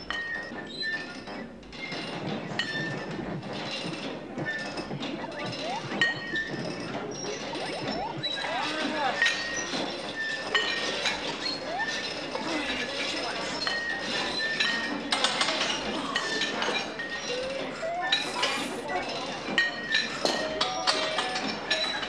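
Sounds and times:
metallic clanks of weight plates: 0.0 - 17.4.

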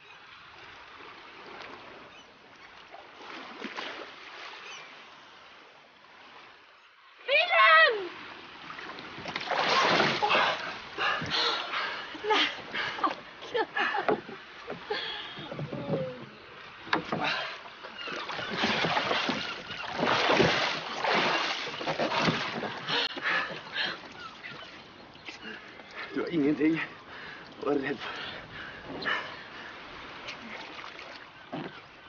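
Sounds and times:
water splashing against rowboat: 0.0 - 32.0.

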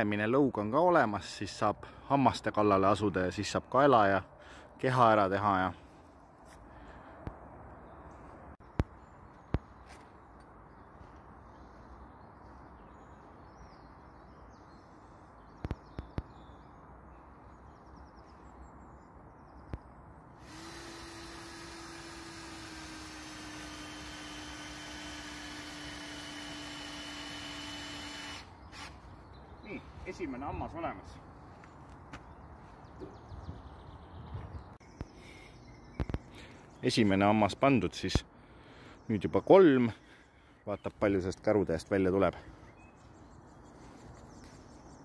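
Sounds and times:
cordless drill driving screw: 20.4 - 29.0.

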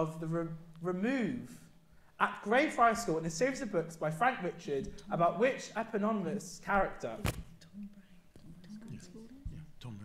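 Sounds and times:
people talking in hushed voices: 4.7 - 10.0.

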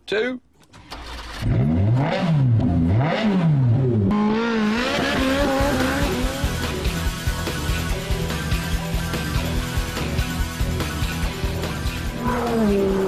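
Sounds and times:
car engine revving: 1.0 - 13.0
background music with steady beat: 5.1 - 13.0.

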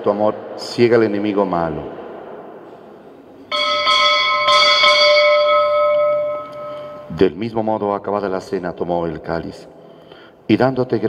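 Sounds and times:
altar bell ringing: 3.4 - 7.5.

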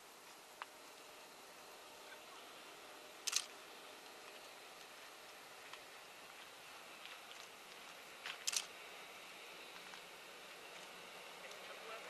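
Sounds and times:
faint outdoor hiss: 0.0 - 12.0
sharp double click: 3.3 - 3.5.

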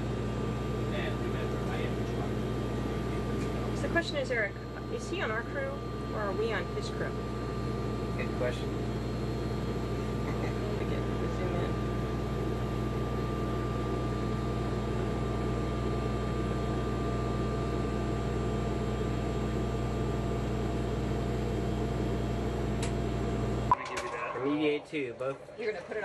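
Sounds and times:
ventilation fans humming: 0.0 - 26.0.

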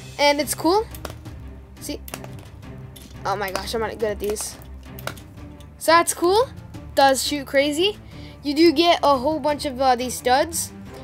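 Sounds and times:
sharp plastic clicks: 2.0 - 5.3.

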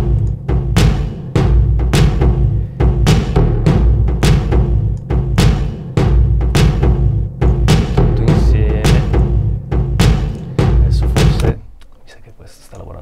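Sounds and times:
sampled drum hits: 0.0 - 11.8
heavy sustained bass: 1.4 - 5.4.

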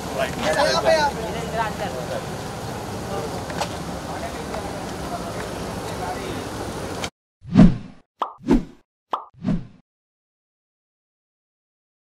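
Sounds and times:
cartoon plop: 8.2 - 8.5, 9.1 - 9.3.

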